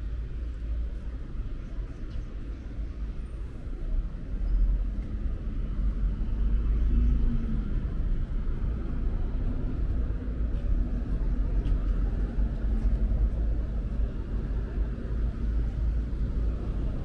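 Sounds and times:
city traffic rumble: 0.0 - 17.0.

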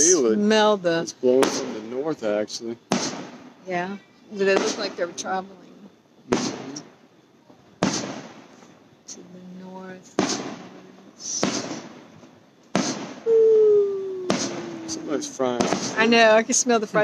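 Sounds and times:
fireworks booming: 1.3 - 5.4, 6.3 - 7.0, 7.8 - 8.7, 9.8 - 17.0
small firework pops: 2.9 - 3.5, 7.5 - 8.8, 10.2 - 10.7, 11.3 - 13.3, 14.2 - 16.2
long downward sliding tone: 13.3 - 15.4.

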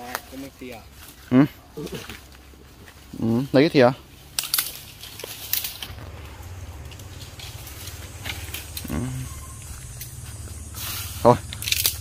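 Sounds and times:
fire crackling: 4.0 - 12.0
steady low rumble: 4.8 - 12.0
faint hiss: 5.4 - 12.0.

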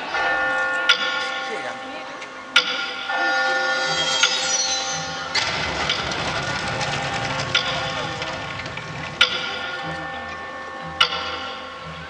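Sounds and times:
sudden crash: 3.6 - 9.3
low rumble with smaller hits: 3.8 - 10.1.

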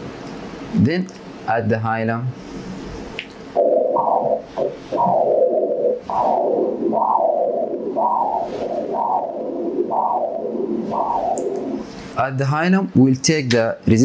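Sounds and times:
doppler ultrasound whooshing pulse: 2.5 - 12.2.

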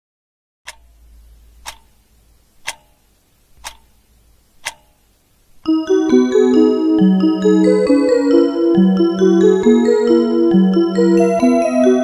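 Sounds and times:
clock ticking: 0.7 - 5.1
electronic clock chime melody: 5.6 - 12.0.

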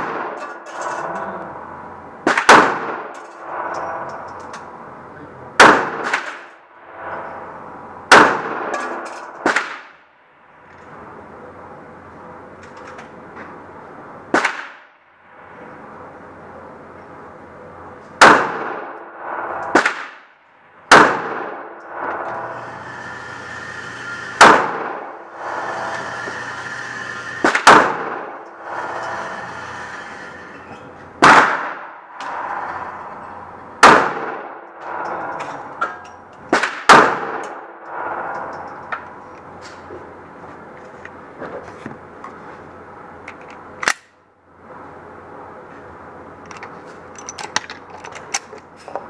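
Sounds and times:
pistol shots echoing: 5.6 - 6.4, 8.1 - 8.7, 20.9 - 21.7, 33.8 - 34.5.

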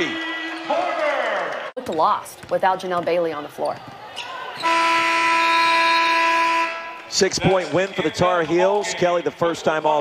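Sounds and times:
game clock horn buzzing: 4.6 - 7.0.

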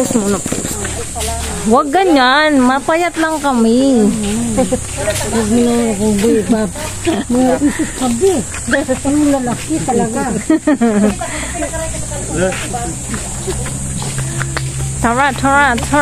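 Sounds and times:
people talking: 0.0 - 16.0.

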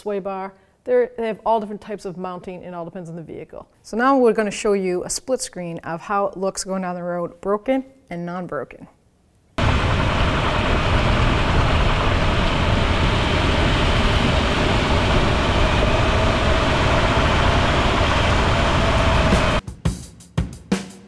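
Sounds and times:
deep rumble: 9.6 - 19.6
road and tyre noise: 9.6 - 19.6
wind rush: 9.6 - 19.6.

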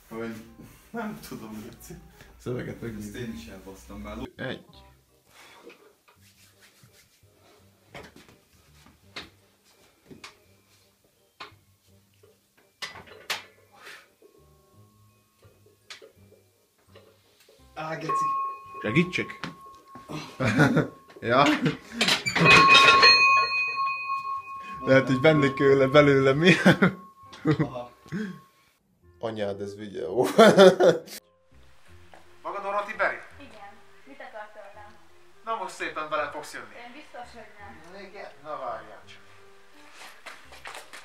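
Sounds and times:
high ringing tone: 18.0 - 21.5, 22.2 - 28.5.

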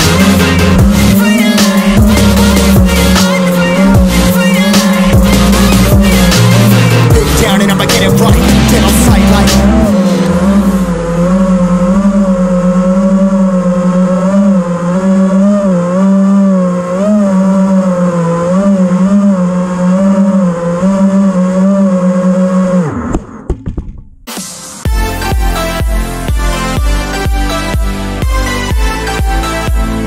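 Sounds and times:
drone motors whining: 0.0 - 23.5.

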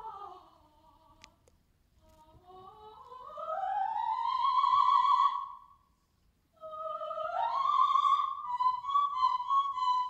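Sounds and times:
soprano singing unaccompanied: 0.0 - 5.7, 6.6 - 10.0.

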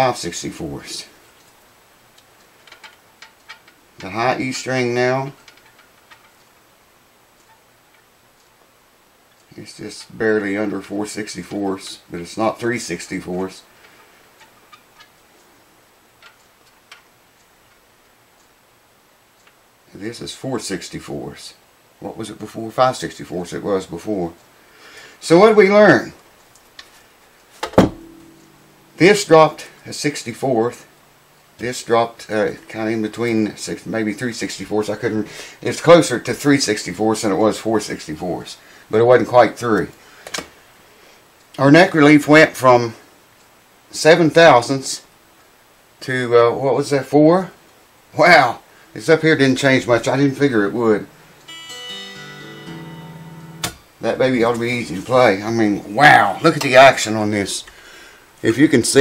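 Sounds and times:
knock on electric guitar: 27.7 - 28.3
guitar strings ringing: 27.8 - 34.7, 49.9 - 54.8.

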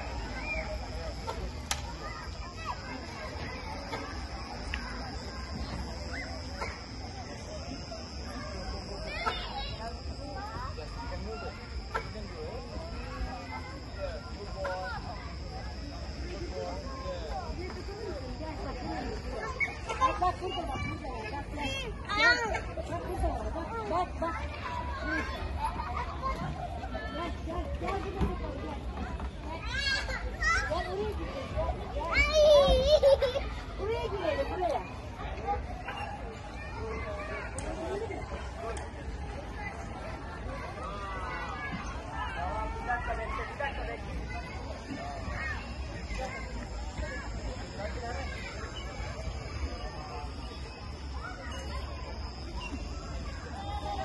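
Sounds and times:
children playing and calling out: 0.0 - 54.0
murmur of people talking: 0.0 - 54.0.

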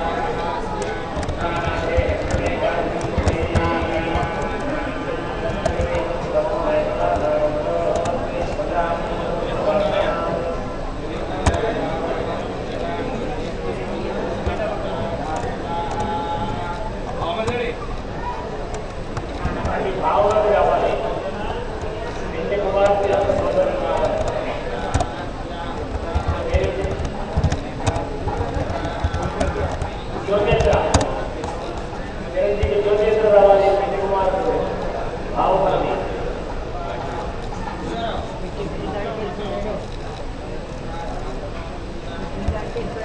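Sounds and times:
people talking at once: 0.0 - 43.0
light clicks and taps: 0.8 - 4.7.

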